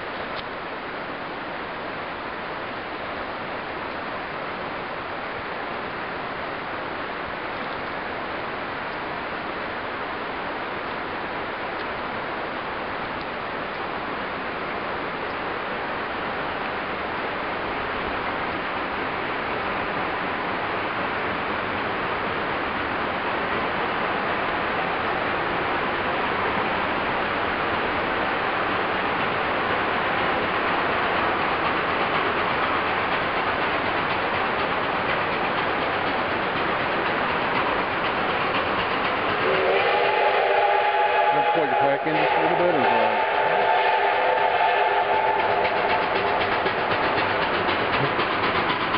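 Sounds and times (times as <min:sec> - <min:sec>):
steam train rushing: 0:00.0 - 0:48.9
steam whistle chord: 0:39.4 - 0:46.0.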